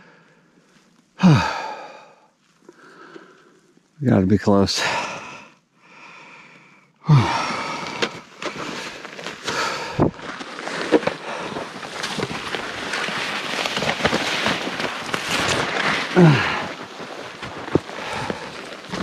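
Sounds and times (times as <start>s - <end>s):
person breathing out hard: 1.2s - 3.6s, 4.8s - 10.2s, 16.2s - 16.8s, 17.7s - 19.0s
branches rustling against jacket: 7.4s - 19.0s
twigs snapping: 7.8s - 19.0s.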